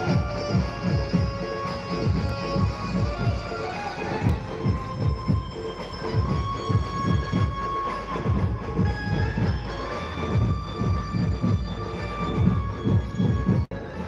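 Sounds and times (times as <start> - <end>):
distorted electronic dance music: 0.0 - 14.0
heavy bass beat: 0.0 - 14.0.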